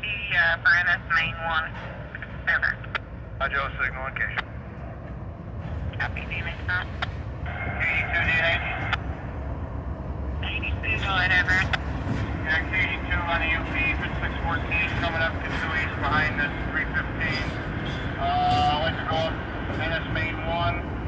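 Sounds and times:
garbled scanner radio voices: 0.0 - 4.5, 5.9 - 9.1, 10.4 - 11.8, 12.4 - 20.8
freight train rumbling on trestle: 0.0 - 21.0.

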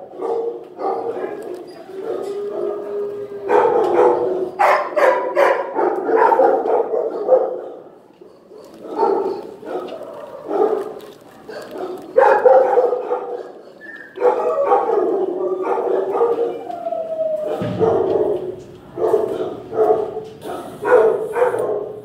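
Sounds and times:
dogs barking: 0.0 - 22.0.

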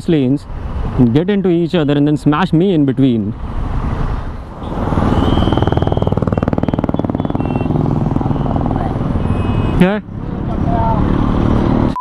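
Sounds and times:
engine running with pulsing beat: 5.2 - 8.9.

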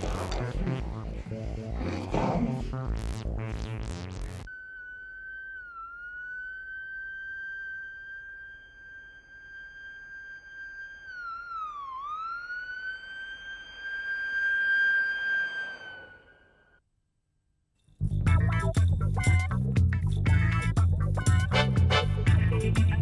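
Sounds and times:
high whistle-like electronic tone: 3.6 - 16.8.

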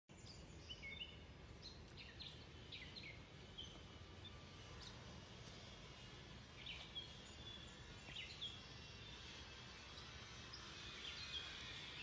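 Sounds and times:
songbird chirping: 0.1 - 12.0.

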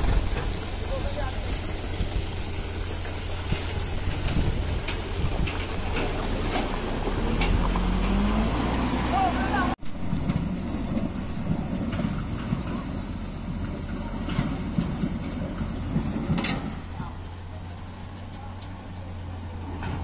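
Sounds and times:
diesel truck engine revving: 0.0 - 20.0
distant truck engine running: 0.0 - 20.0.

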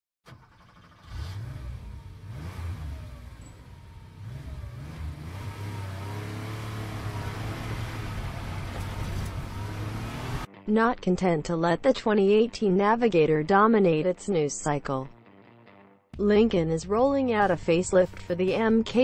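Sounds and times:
car engine revving: 0.3 - 10.5.

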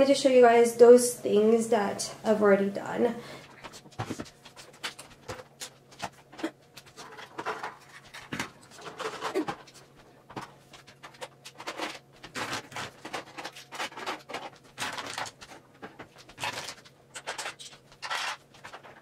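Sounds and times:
small items clicking and knocking: 4.1 - 19.0.

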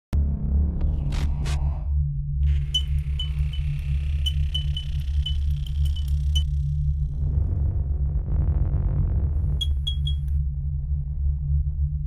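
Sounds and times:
deep bass drone: 0.1 - 12.0
high ringing tone: 2.5 - 6.5, 9.5 - 10.3.

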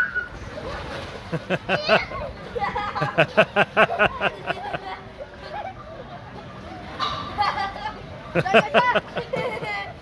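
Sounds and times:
person laughing: 3.0 - 4.8.

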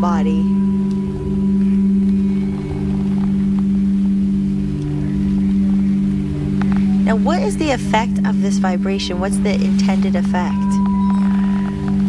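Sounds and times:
singing bowls humming: 0.0 - 12.0.

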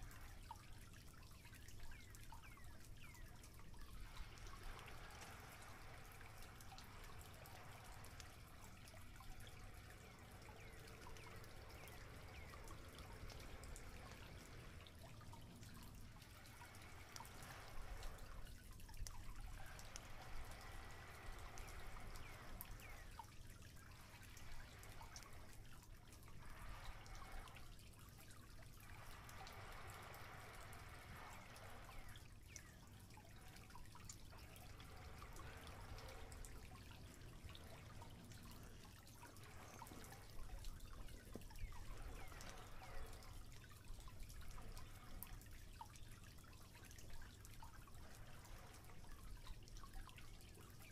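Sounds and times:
soft rushing background: 0.0 - 50.9.

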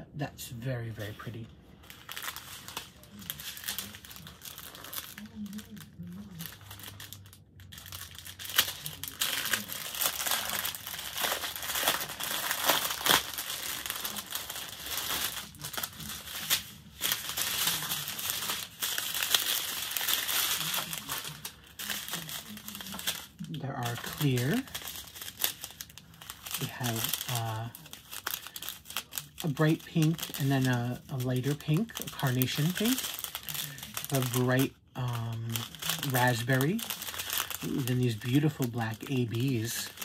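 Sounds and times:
plastic packaging crinkling: 0.5 - 40.0.

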